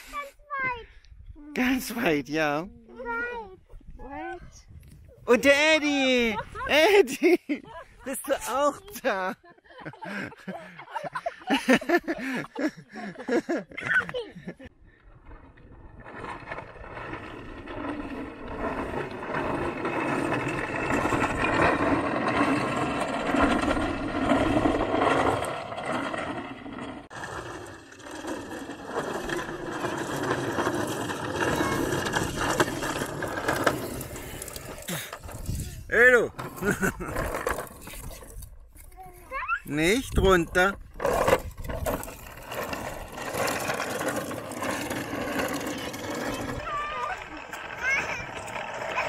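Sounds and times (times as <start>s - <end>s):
plastic toy wheels rattling on concrete: 15.2s - 49.0s.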